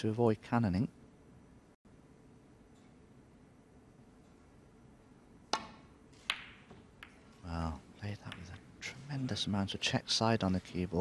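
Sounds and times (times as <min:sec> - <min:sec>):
cue striking ball click: 0:05.5 - 0:07.2.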